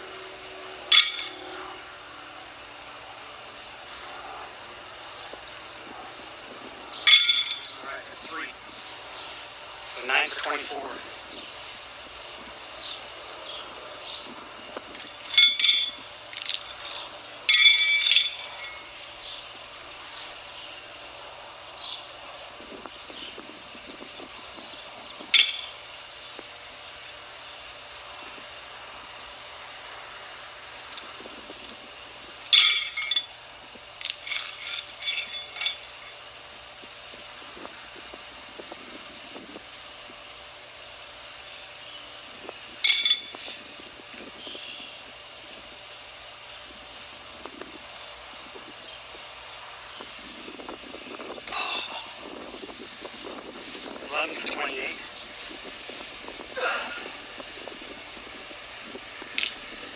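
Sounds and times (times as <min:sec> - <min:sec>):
horseshoe clanking on metal stake: 0:00.9 - 0:01.4, 0:07.0 - 0:07.7, 0:15.0 - 0:16.6, 0:17.5 - 0:18.8, 0:32.5 - 0:33.3, 0:42.8 - 0:43.4.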